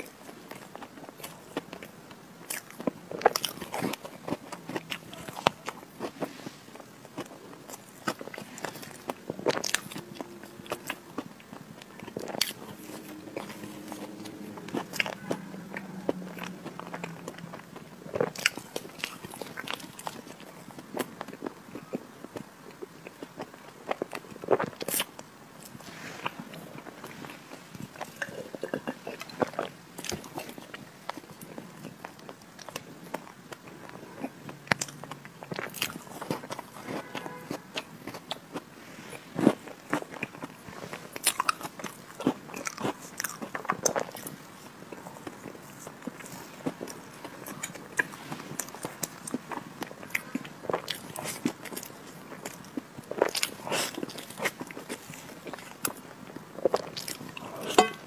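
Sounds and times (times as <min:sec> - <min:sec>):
soft low hum: 0:00.0 - 0:41.9
mouth chewing with wet smacks: 0:00.0 - 0:58.0.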